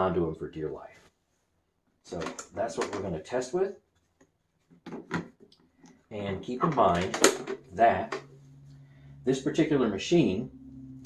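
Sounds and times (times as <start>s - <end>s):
plastic clicks and knocks: 4.8s - 5.5s.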